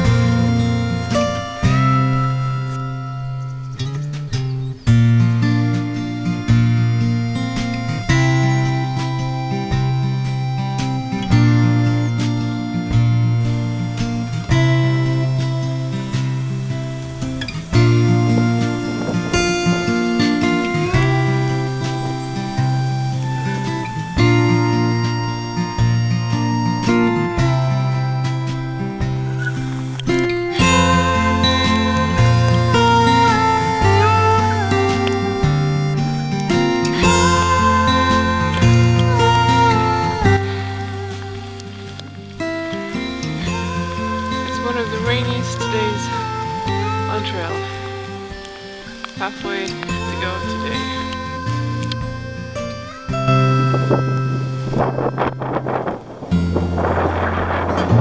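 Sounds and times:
acoustic guitar chords: 0.0 - 58.0
background music with held notes: 0.0 - 58.0.

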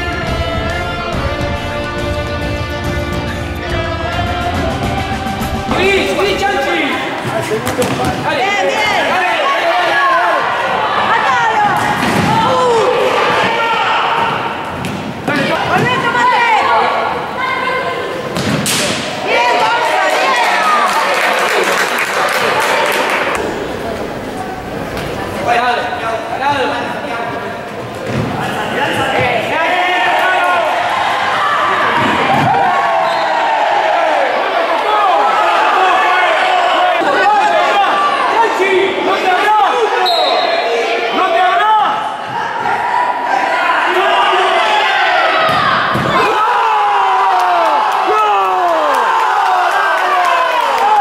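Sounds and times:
players and spectators shouting: 3.7 - 27.2, 28.4 - 51.0.

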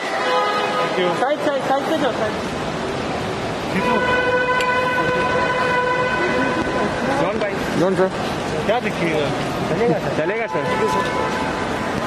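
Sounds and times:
voices nearby: 0.0 - 12.0.

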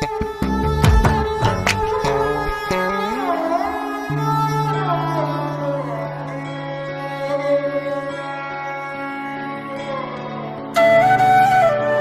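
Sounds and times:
percussion strikes: 0.0 - 2.3.

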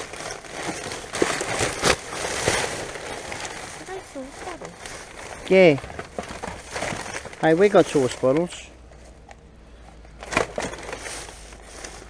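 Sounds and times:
plastic bags and bottles crinkling: 0.0 - 9.3, 9.9 - 12.0.

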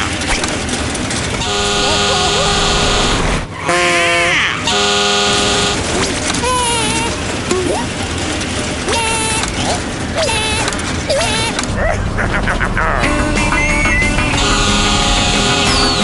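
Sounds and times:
horn blasts: 1.4 - 6.0, 13.3 - 16.0
cartoon vocal cries: 6.4 - 7.9, 10.2 - 12.1.

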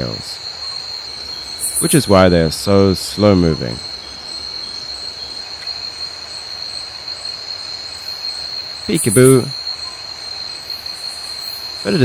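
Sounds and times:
insects calling: 0.0 - 12.0.

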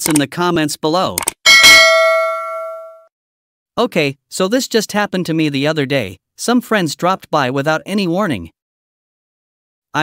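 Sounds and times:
bell-like chime ringing: 1.5 - 3.1.

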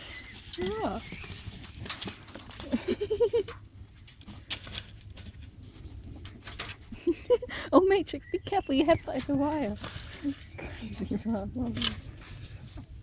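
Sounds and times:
woman laughing: 2.6 - 3.6, 6.9 - 7.9.

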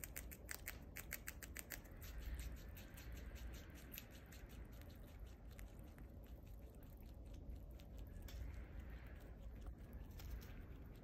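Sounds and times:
squirrel gnawing leaf stalk: 0.0 - 11.0.

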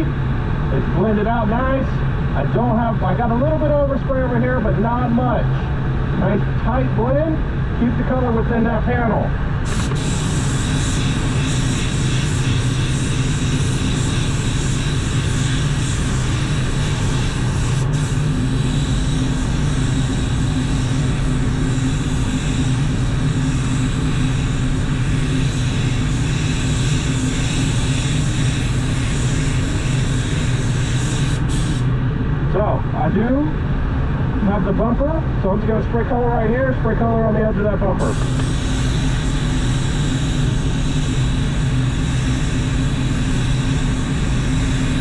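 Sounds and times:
low drone of fans: 0.0 - 45.0
paint spray gun hissing: 9.6 - 31.9, 38.0 - 45.0.

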